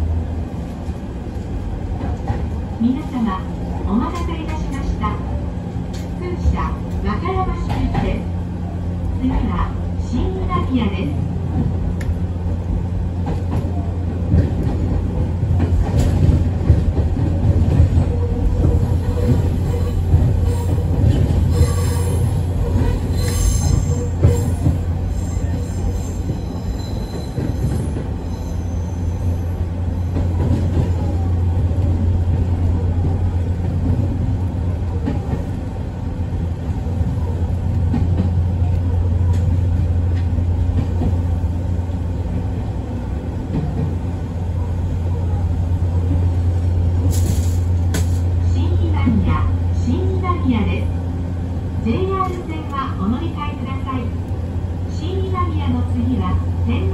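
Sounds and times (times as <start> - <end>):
train low rumble: 0.0 - 56.9
high-pitched wheel squeal: 21.5 - 29.4.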